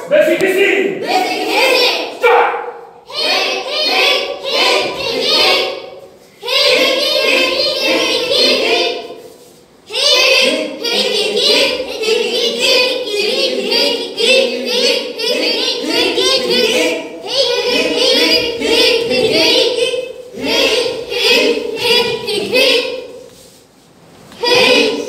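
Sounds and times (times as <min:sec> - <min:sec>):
children singing in unison: 0:01.0 - 0:02.2, 0:03.0 - 0:09.3, 0:09.9 - 0:23.3, 0:24.3 - 0:25.0.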